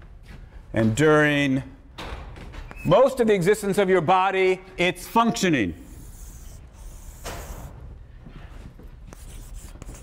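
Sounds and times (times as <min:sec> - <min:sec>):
chalk scraping on blackboard: 0:05.9 - 0:07.7, 0:09.1 - 0:10.0
chalk ticking against board: 0:09.1 - 0:10.0.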